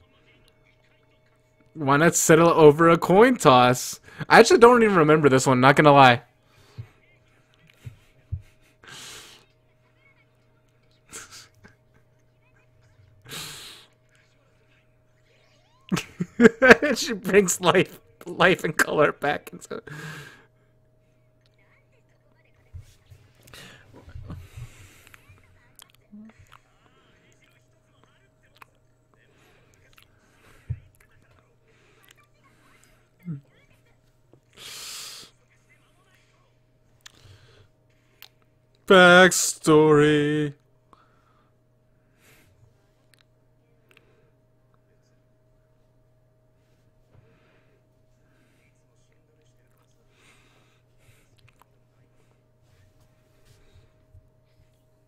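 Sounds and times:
man chuckling: 11.1 - 12.1, 15.9 - 17.6
man's stifled laugh: 15.9 - 17.3.

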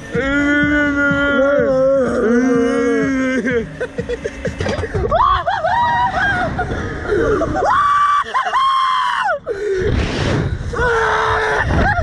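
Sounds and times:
young man screaming: 0.1 - 3.7, 7.6 - 9.4, 10.7 - 12.0.

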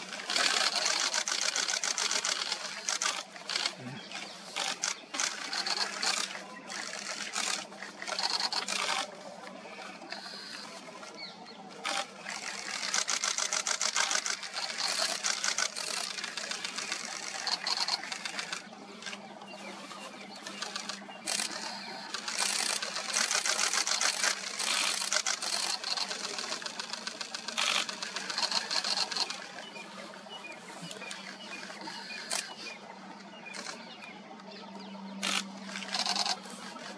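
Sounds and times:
camera shutter bursts: 0.0 - 9.1, 11.8 - 19.2, 20.4 - 29.5, 30.9 - 32.6, 33.5 - 33.8, 35.2 - 36.9.

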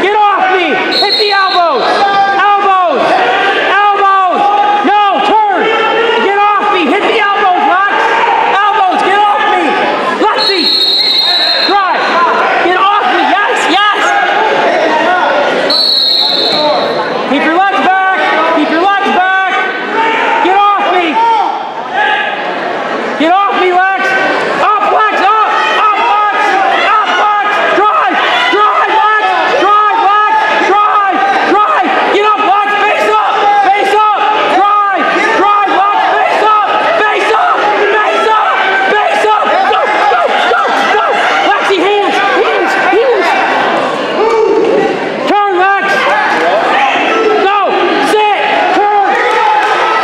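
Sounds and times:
crowd yelling and shouting: 0.0 - 50.0
spectators' voices: 0.0 - 50.0
referee's whistle: 0.9 - 2.0, 10.3 - 12.1, 15.7 - 17.2.

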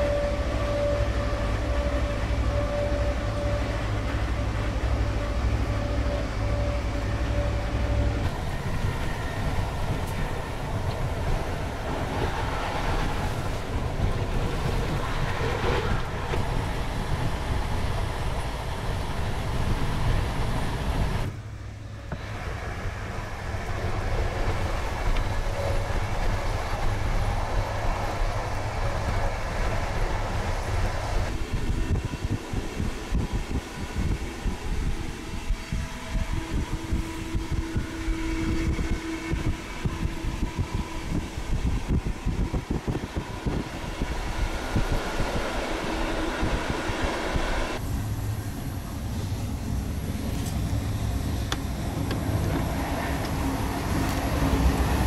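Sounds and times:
train carriage rumble and rattle: 0.0 - 55.0.

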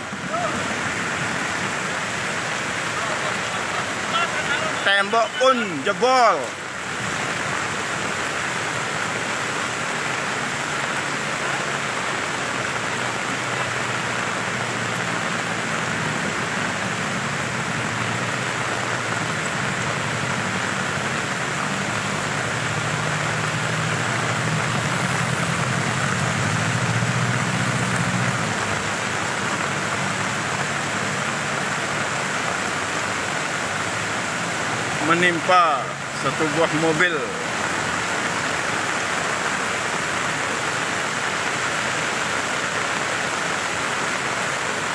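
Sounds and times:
floodwater rushing: 0.0 - 44.9
heavy rain: 0.0 - 44.9.

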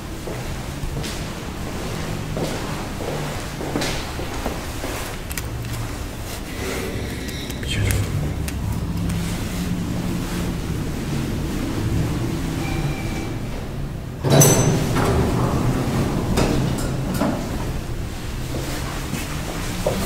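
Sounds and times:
steady low hum: 0.0 - 14.2.

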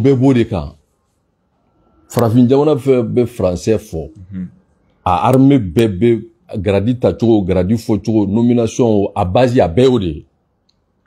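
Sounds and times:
man speaking forcefully: 2.1 - 4.5.

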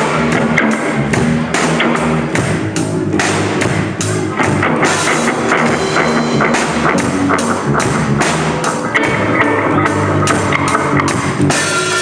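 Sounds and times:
rock band music: 0.0 - 12.0.

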